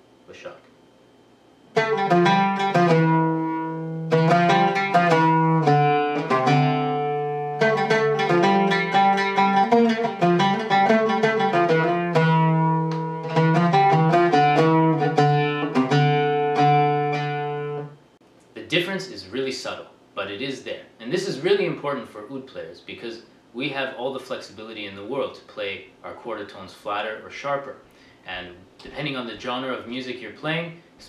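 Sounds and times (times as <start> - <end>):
oud plucked with a pick: 1.7 - 18.0.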